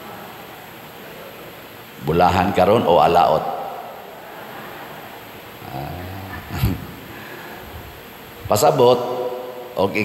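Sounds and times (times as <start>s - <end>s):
man chuckling: 6.1s - 7.1s.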